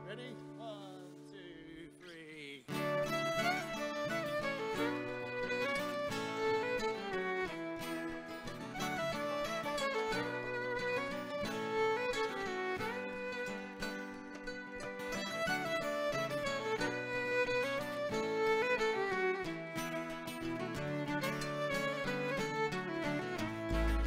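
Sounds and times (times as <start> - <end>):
bluegrass string band playing: 0.0 - 0.6, 2.7 - 24.0.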